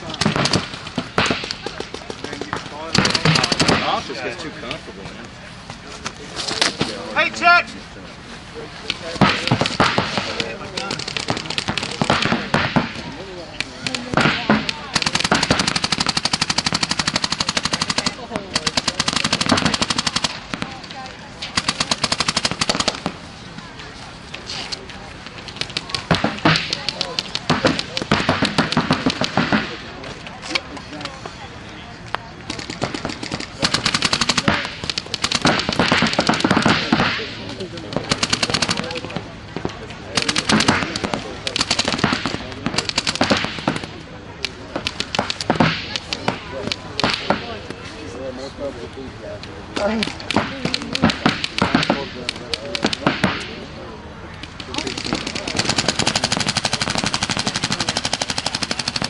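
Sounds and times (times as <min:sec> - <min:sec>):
paintball markers firing: 0:00.0 - 0:04.8, 0:08.8 - 0:23.2, 0:24.3 - 0:31.2, 0:32.4 - 0:47.8, 0:49.8 - 0:53.6, 0:54.3 - 0:59.0.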